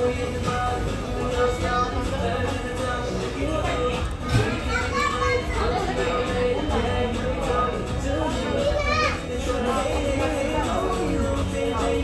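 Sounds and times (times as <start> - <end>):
indistinct voices: 0.0 - 12.0
children's voices: 1.2 - 11.9.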